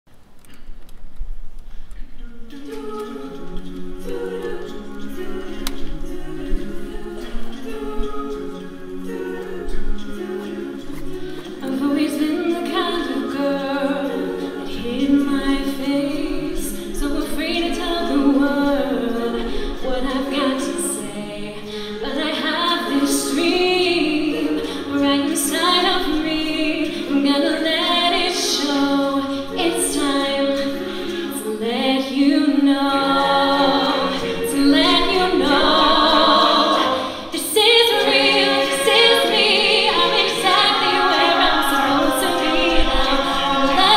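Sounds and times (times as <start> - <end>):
a cappella group singing harmony: 2.2 - 43.9.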